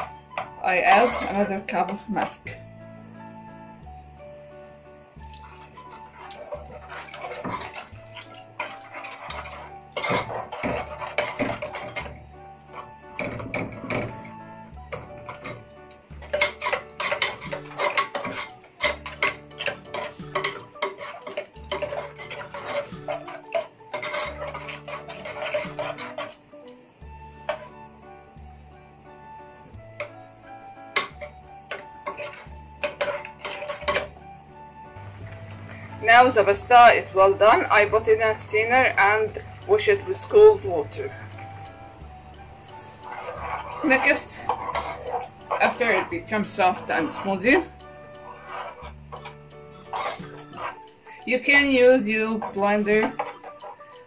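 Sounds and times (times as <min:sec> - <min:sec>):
metal spoon scraping a pot: 0:00.0 - 0:02.6, 0:05.2 - 0:26.5, 0:27.4 - 0:27.8, 0:30.0 - 0:34.3, 0:42.3 - 0:54.0
background music: 0:00.0 - 0:54.0.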